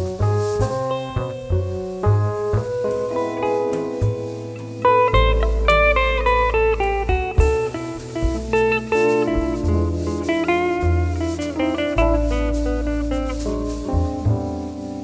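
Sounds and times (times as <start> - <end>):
double bass: 0.0 - 15.0
drum kit: 0.0 - 15.0
electric guitar: 0.0 - 15.0
piano: 0.0 - 15.0.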